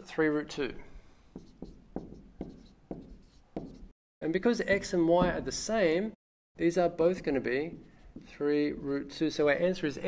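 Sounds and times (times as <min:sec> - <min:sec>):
marker pen writing on whiteboard: 0:01.3 - 0:04.0, 0:06.9 - 0:09.6.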